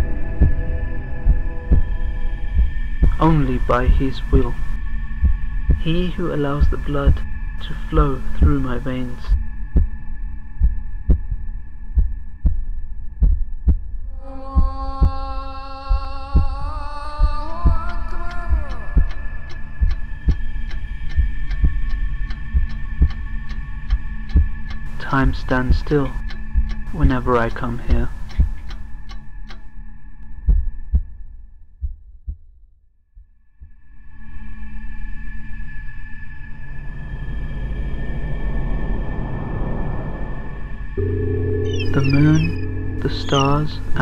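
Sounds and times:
heartbeat thumps: 0.0s - 29.2s, 30.3s - 32.6s
humming drone: 0.0s - 31.0s, 33.7s - 44.0s
sliding high drone: 36.7s - 44.0s.

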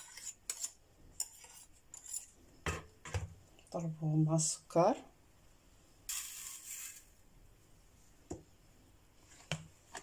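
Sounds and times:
sugar pouring into bowl: 6.1s - 7.2s.

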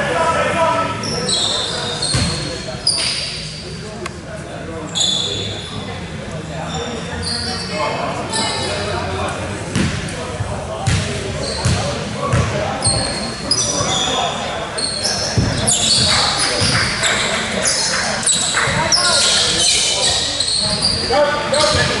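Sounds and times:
voices in a gym: 0.0s - 22.0s
sneakers squeaking on court: 1.0s - 3.4s, 10.8s - 22.0s
basketball bouncing on court: 10.8s - 13.0s, 15.3s - 17.3s.

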